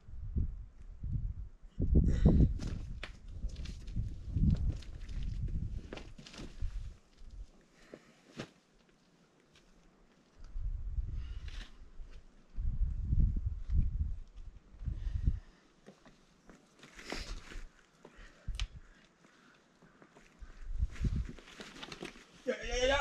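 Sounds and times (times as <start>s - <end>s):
wind rumbling on microphone: 0.0s - 7.5s, 10.4s - 15.5s, 18.4s - 18.9s, 20.4s - 21.4s.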